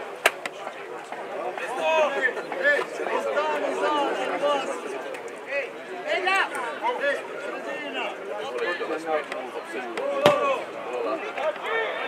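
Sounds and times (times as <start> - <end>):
players' voices calling: 0.0 - 12.0.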